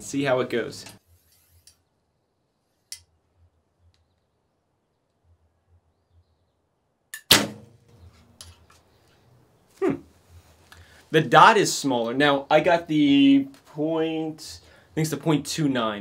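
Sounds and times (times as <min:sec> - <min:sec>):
bowstring snapping: 0:07.2 - 0:07.7.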